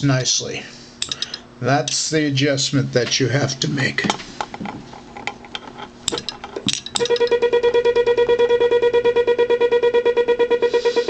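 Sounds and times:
morse code beeping tone: 0:07.0 - 0:11.0.

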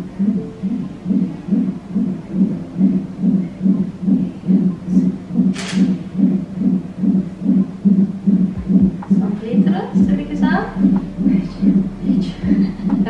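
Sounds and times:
fetal heartbeat on doppler monitor: 0:00.0 - 0:13.0.

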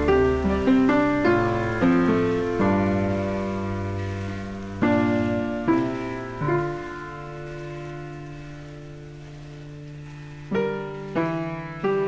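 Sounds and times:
piano chords: 0:00.0 - 0:12.0.

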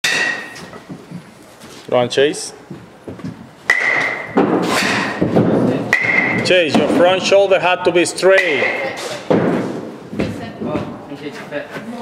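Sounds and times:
metal bat ringing ping: 0:03.7 - 0:05.2, 0:05.9 - 0:06.5.

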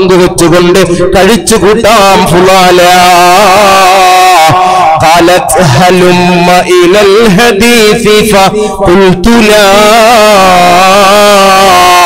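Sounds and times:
man chanting over loudspeaker: 0:00.0 - 0:12.0.

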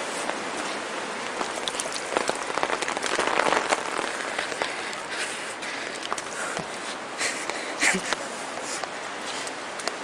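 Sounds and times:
rain downpour: 0:00.0 - 0:10.0
raindrops ticking sharply: 0:01.2 - 0:06.3.

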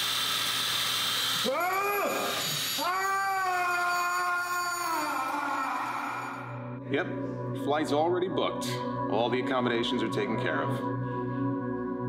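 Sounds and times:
man screaming: 0:01.4 - 0:06.6.

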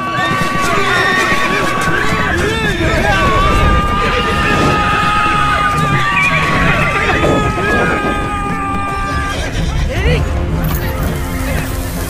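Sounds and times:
background film music: 0:00.0 - 0:12.0
hoofbeats: 0:00.0 - 0:12.0
horses whinnying: 0:00.1 - 0:10.3.

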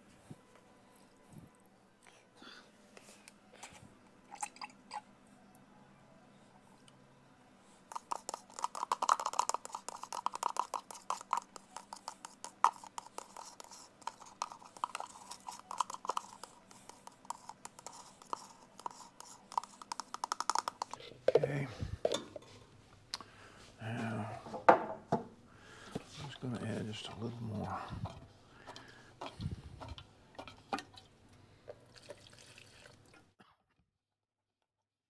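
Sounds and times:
stick scraping plastic cup: 0:07.9 - 0:21.6.

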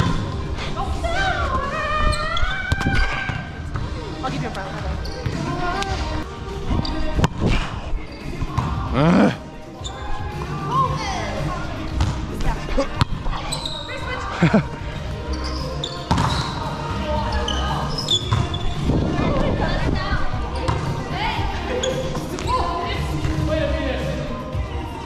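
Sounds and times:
players' voices: 0:00.0 - 0:25.0
shoes squeaking on court: 0:04.6 - 0:06.0, 0:11.9 - 0:14.2, 0:15.3 - 0:18.9, 0:20.5 - 0:21.0, 0:21.7 - 0:23.4.

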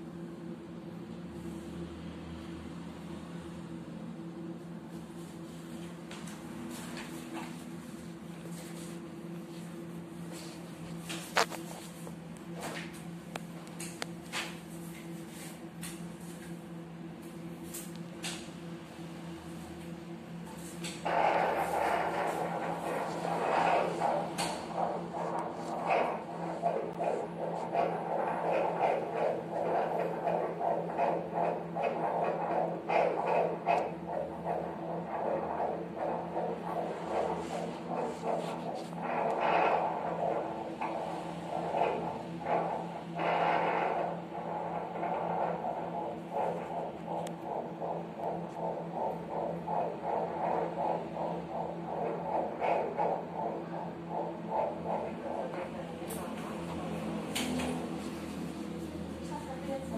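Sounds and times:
electrical hum: 0:00.0 - 0:59.9
whooshing fetal heartbeat: 0:04.8 - 0:59.9.

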